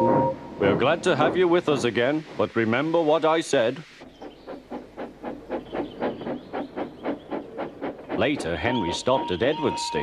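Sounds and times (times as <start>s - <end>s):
steam locomotive chuffing: 4.0s - 9.8s.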